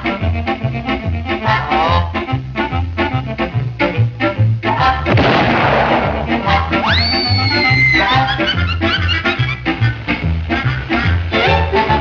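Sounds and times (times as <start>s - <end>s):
cartoon orchestra with swing beat: 0.0s - 12.0s
explosion sound effect: 5.1s - 7.4s
rising whistle: 6.8s - 8.3s.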